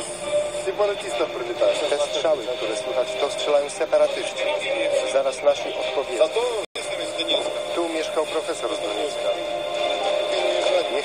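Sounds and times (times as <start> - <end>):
radio news speech: 0.0 - 11.0
steady high tone: 0.0 - 11.0.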